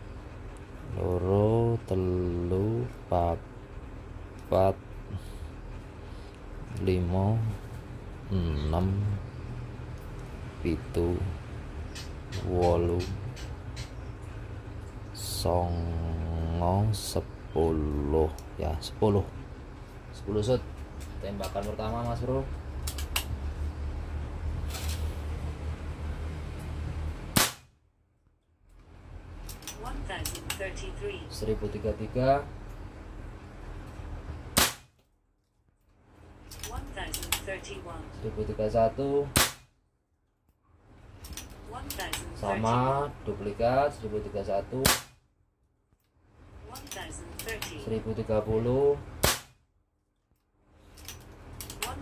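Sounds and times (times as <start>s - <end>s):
air rifle shot: 27.3s - 27.7s, 34.6s - 34.9s, 39.4s - 39.7s, 44.8s - 45.2s, 49.2s - 49.6s.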